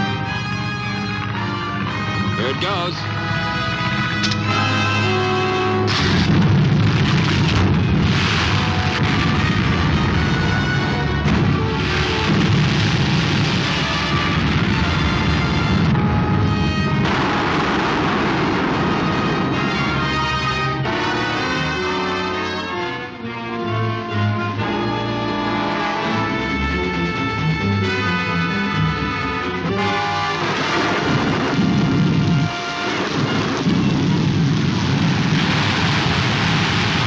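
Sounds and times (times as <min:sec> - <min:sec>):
dramatic orchestral music: 0:00.0 - 0:34.9
rumbling explosion effects: 0:05.8 - 0:22.0, 0:29.7 - 0:37.0.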